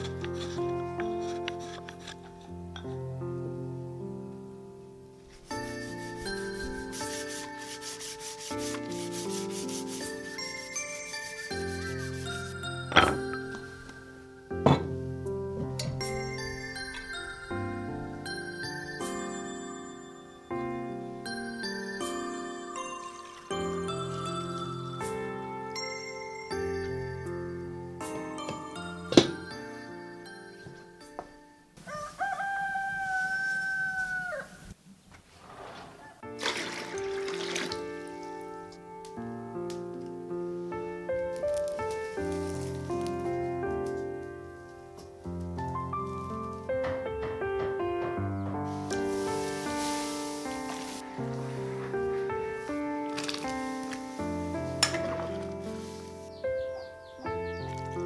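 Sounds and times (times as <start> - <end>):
background music: 0.0 - 31.8, 36.2 - 58.0
rooster crowing: 31.8 - 34.8.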